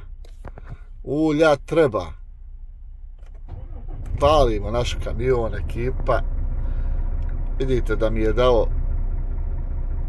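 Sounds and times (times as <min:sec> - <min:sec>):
diesel engine idling: 0:02.2 - 0:10.0.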